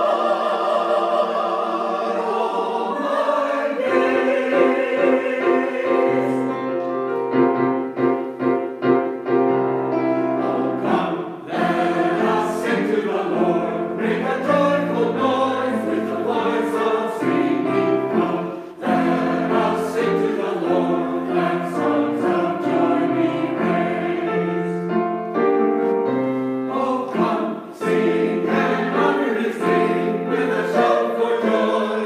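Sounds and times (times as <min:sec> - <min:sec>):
choir singing: 0:00.0 - 0:08.8, 0:09.8 - 0:32.0
piano accompaniment: 0:00.0 - 0:32.0.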